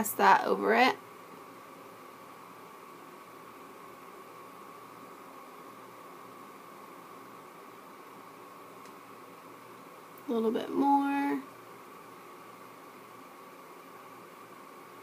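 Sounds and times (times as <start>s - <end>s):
faint steady hiss: 0.0s - 15.0s
thin high hum: 0.0s - 15.0s.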